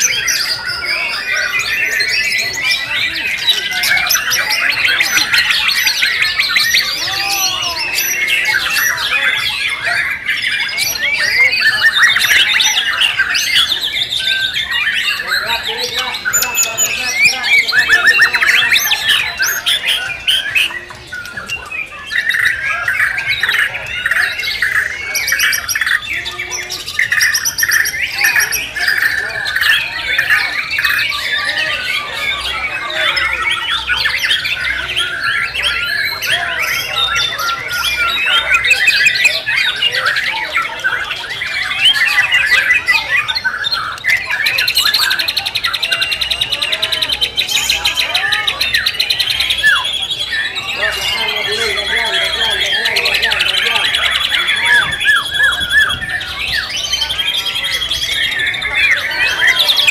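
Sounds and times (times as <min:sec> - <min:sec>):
other birds singing: 0:00.0 - 0:59.9
songbird singing whistles and trills: 0:00.0 - 0:59.9.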